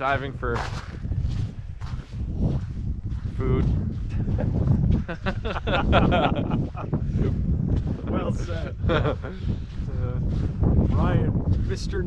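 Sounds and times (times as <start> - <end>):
footsteps on dirt and snow: 0.0 - 12.0
wind rumble on microphone: 0.0 - 12.0.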